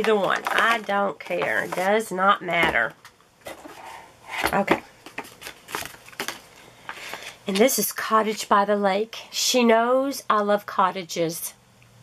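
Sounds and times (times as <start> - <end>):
paper and plastic packaging crinkling: 0.0 - 2.1, 4.5 - 7.4.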